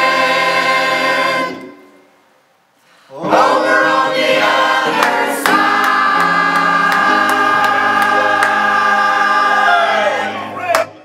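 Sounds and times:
choir singing in harmony: 0.0 - 2.2, 3.1 - 11.0.

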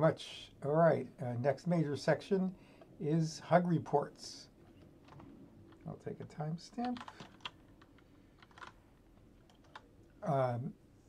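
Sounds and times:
computer keyboard clicks: 6.8 - 8.8, 9.5 - 9.8.

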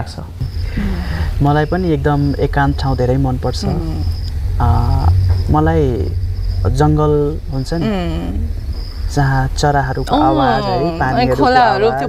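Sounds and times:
people talking: 0.0 - 8.5, 9.1 - 12.0
cricket chirping: 0.0 - 12.0.

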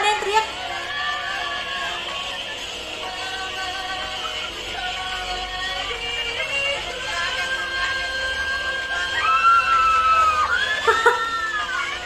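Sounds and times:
fans shouting: 9.0 - 12.0.

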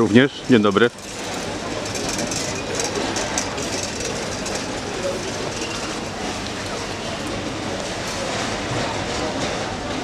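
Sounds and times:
hubbub of busy store: 0.0 - 10.0
shopping trolley rattling: 0.0 - 10.0.

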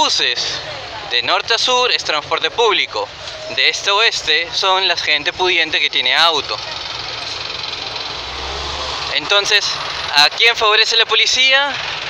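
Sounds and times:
city traffic noise: 0.0 - 12.0
low engine rumble: 0.0 - 12.0.

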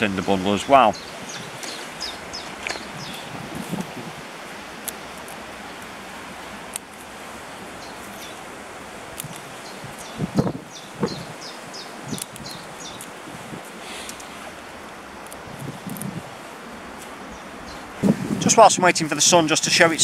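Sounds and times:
wind in trees: 0.0 - 20.0
dry plant stalk crackling: 9.1 - 10.2, 12.1 - 17.2.

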